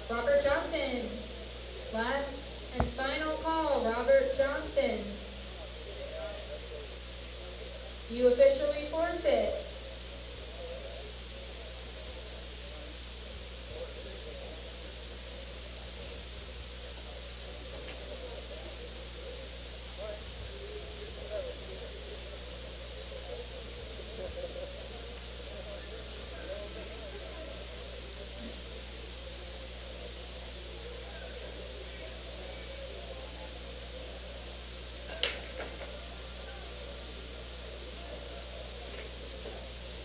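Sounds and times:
murmur of voices: 0:00.0 - 0:40.0
steady low hum: 0:00.0 - 0:40.0.

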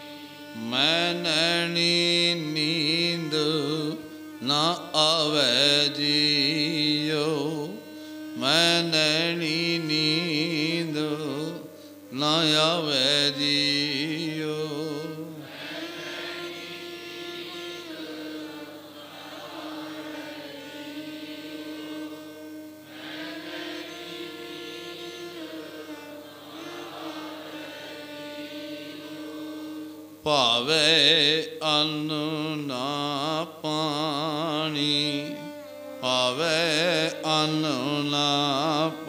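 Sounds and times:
man singing ornamented melody: 0:00.0 - 0:39.0.

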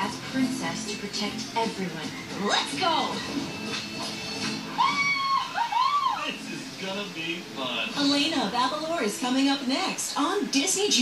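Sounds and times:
music through tv speaker: 0:00.0 - 0:11.0.

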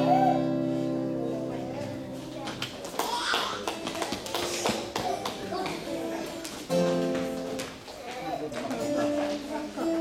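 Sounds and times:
children's footsteps on hall floor: 0:01.4 - 0:10.0.

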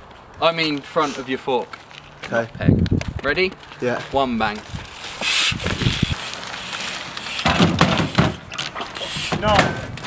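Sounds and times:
bike tyres knocking on wood: 0:07.4 - 0:10.0
knocks and rattles: 0:07.4 - 0:10.0.

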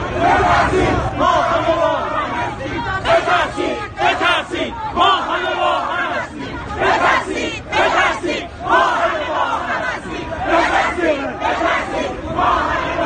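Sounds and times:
crowd shouting in chant: 0:00.0 - 0:13.0.

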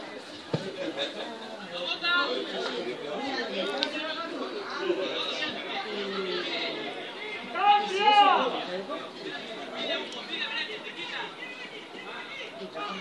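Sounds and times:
voices chattering: 0:00.0 - 0:13.0
loud shout: 0:07.5 - 0:08.5.

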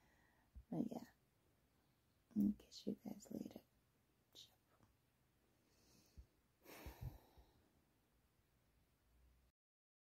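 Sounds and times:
faint breath: 0:00.0 - 0:00.6, 0:05.6 - 0:07.7
soft sigh: 0:05.8 - 0:07.6.

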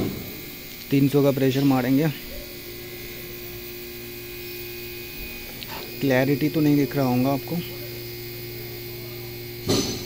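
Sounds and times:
machine electric hum: 0:00.0 - 0:10.0.

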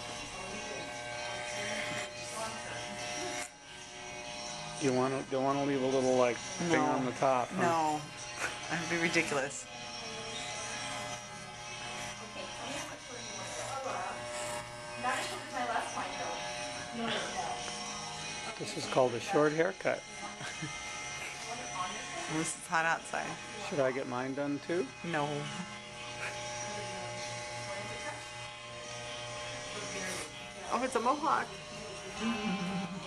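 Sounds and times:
electric hair clippers buzzing: 0:00.0 - 0:33.0.

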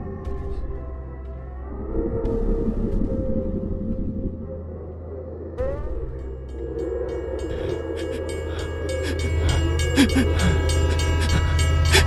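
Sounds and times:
low drone hum: 0:00.0 - 0:12.0.

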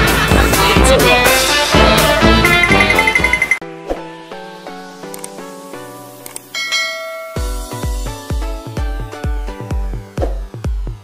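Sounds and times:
electronic music with bass kicks: 0:00.0 - 0:03.4, 0:07.4 - 0:11.0
bell-like chime: 0:02.4 - 0:03.6, 0:06.5 - 0:08.0.

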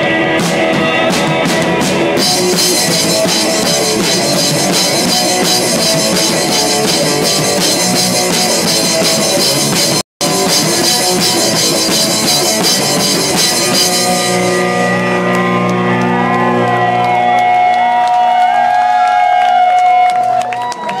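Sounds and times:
drum kit and crashing cymbals: 0:00.0 - 0:15.2
electric guitar ringing: 0:00.0 - 0:16.9
bass notes: 0:00.0 - 0:18.6.

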